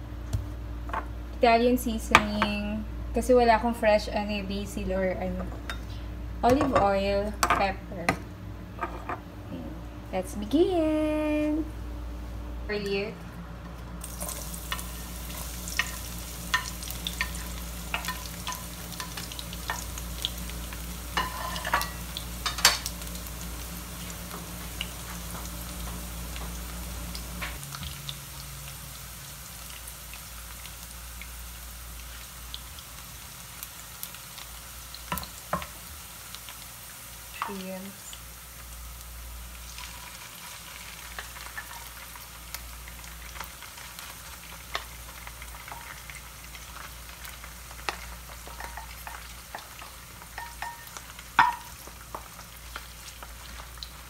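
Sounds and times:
garlic sizzling in oil: 14.0s - 54.0s.

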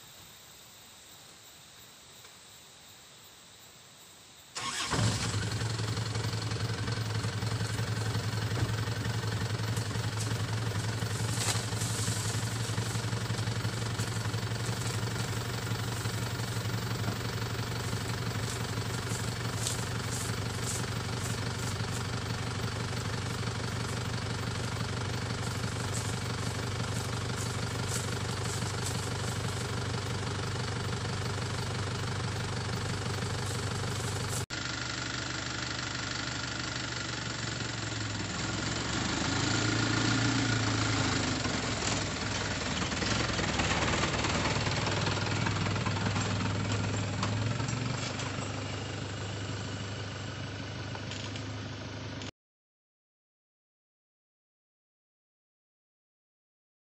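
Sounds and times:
vehicle engine idling: 4.6s - 52.3s.

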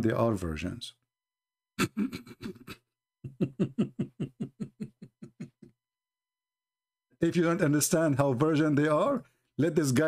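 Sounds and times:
man laughing: 1.8s - 5.8s.

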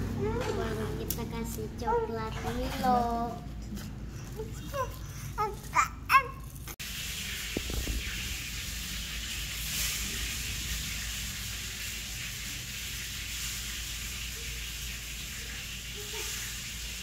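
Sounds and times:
steady hiss: 6.8s - 17.0s.

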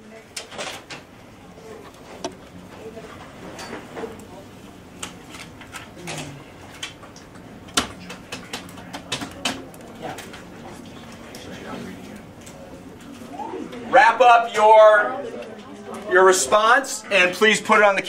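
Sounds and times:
faint murmur of voices: 0.0s - 18.0s.

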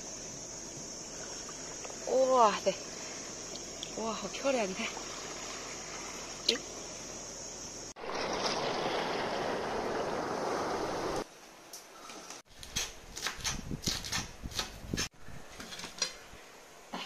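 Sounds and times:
water rushing over rocks: 8.0s - 11.2s.

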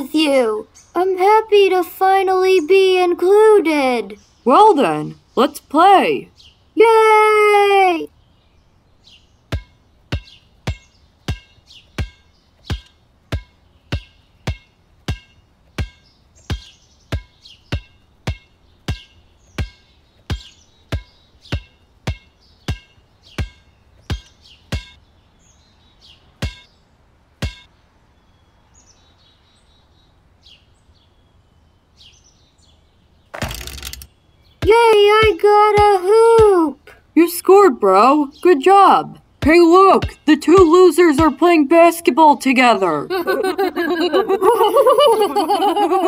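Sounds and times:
faint bird chirps: 8.0s - 26.9s.

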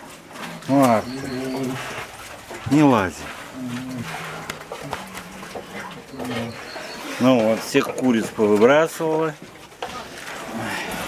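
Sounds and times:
bear cubs humming: 0.6s - 2.2s, 3.1s - 7.8s.

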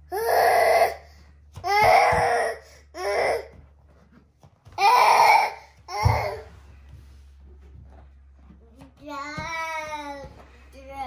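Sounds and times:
baby shouting: 4.8s - 6.4s.

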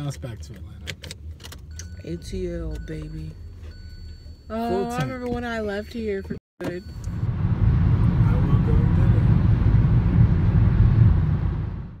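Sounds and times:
road and engine rumble in car: 0.0s - 12.0s.

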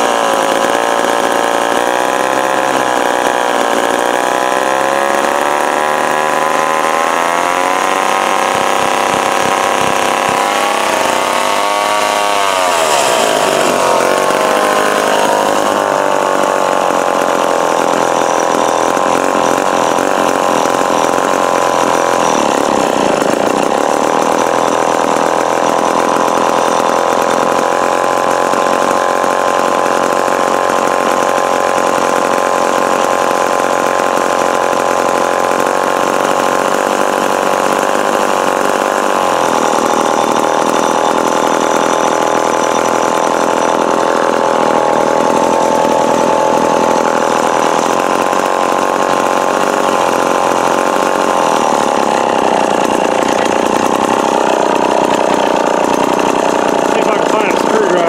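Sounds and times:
chainsaw engine running: 0.0s - 58.0s.

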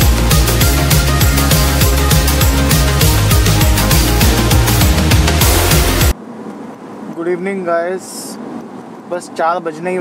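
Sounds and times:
background music: 0.0s - 6.2s
road and engine noise in car: 6.0s - 10.0s.

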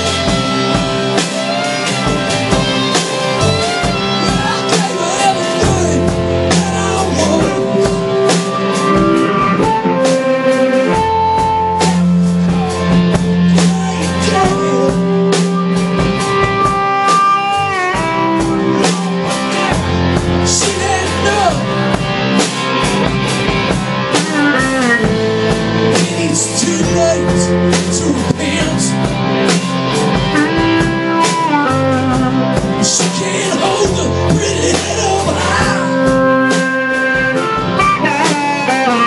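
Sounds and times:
amplified harmonica bending notes: 0.0s - 21.9s, 29.8s - 34.6s, 35.7s - 39.0s
blues rock band playing: 0.0s - 39.0s.

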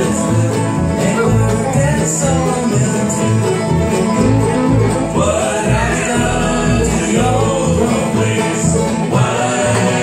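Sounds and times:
upright bass beat: 0.0s - 9.3s
bluegrass band playing: 0.0s - 10.0s.

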